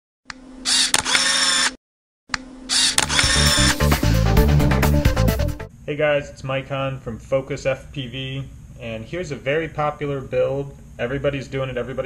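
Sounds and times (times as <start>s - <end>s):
mechanical whirring effect: 0.6s - 1.8s, 2.7s - 4.0s
electronic music with low beat: 3.0s - 5.7s.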